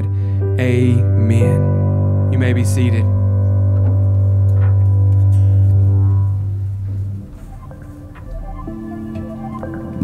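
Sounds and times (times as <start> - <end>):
band holding low chord: 0.0 - 10.0.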